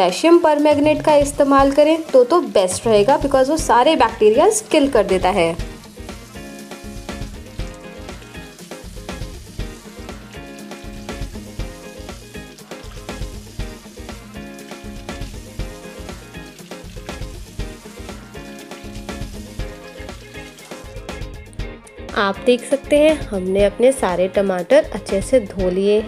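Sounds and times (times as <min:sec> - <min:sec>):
background music with beat: 0:00.0 - 0:26.0
tap water running into sink: 0:04.4 - 0:10.2, 0:10.9 - 0:21.4.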